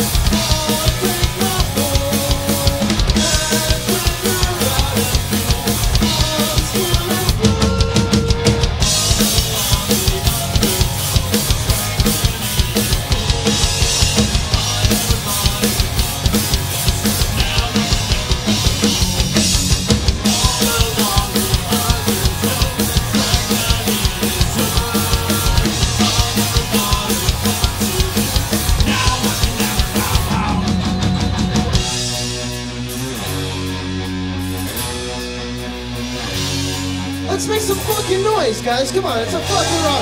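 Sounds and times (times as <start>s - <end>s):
rock band playing live: 0.0s - 40.0s.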